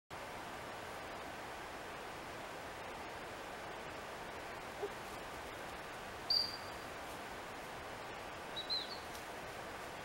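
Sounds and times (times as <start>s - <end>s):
steady outdoor hiss: 0.1s - 10.0s.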